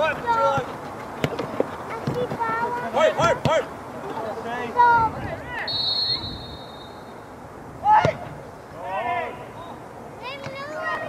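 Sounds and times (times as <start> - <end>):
referee's whistle: 5.7 - 7.2.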